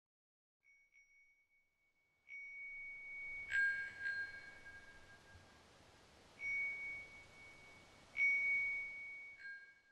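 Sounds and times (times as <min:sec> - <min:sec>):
high bell-like chime ringing: 0:00.7 - 0:05.5, 0:06.4 - 0:09.9.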